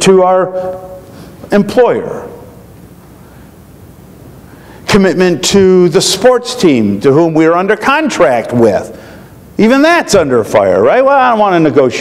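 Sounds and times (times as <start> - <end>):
man speaking: 0.0 - 2.5, 4.9 - 9.0, 9.6 - 12.0.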